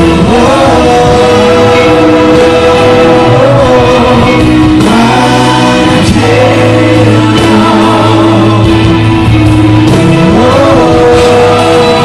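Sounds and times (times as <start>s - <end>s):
amplified instrumental backing: 0.0s - 12.0s
choir singing gospel: 0.0s - 12.0s.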